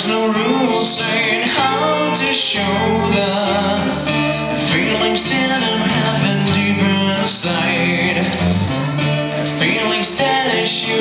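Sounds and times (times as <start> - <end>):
acoustic guitar strumming: 0.0 - 11.0
man singing: 0.0 - 11.0.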